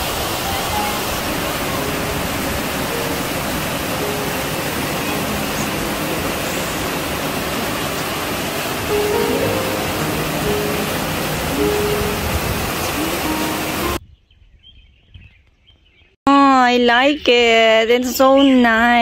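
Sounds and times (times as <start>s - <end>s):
steady rushing hiss: 0.0s - 14.0s
faint pitched notes: 0.4s - 14.0s.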